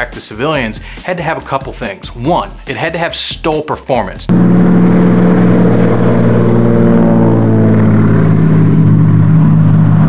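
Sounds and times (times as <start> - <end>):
propeller plane engine droning: 4.3 - 10.0.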